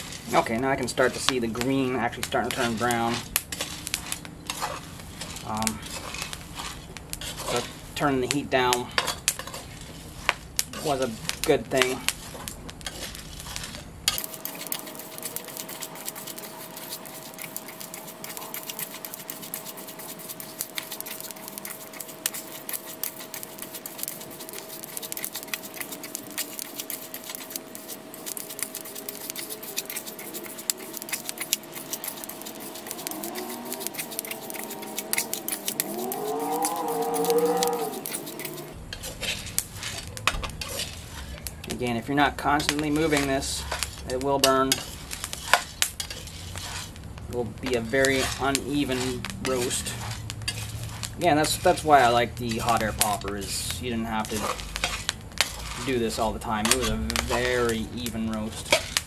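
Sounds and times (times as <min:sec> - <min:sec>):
spatula scraping coffee beans: 0:00.0 - 0:59.0
wavering whine: 0:14.1 - 0:38.8.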